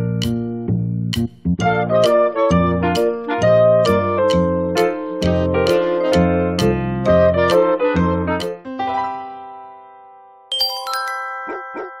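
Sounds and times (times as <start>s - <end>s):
bell-like chime run: 10.5s - 12.0s.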